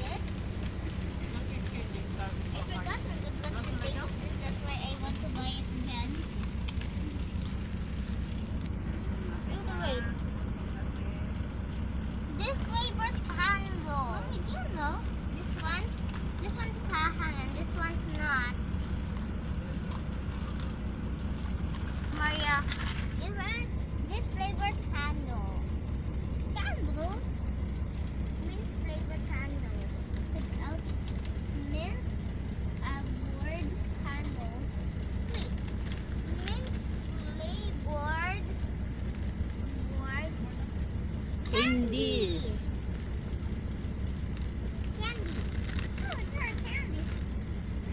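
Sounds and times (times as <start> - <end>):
child's voice: 0.0 - 0.4, 2.5 - 6.4, 9.2 - 10.2, 12.2 - 18.6, 22.1 - 25.7, 26.4 - 27.4, 28.3 - 38.7, 39.6 - 40.7, 41.4 - 42.8, 44.8 - 47.3
quiet voices: 0.0 - 15.9, 39.5 - 43.2
bus engine and road drone: 0.0 - 47.9.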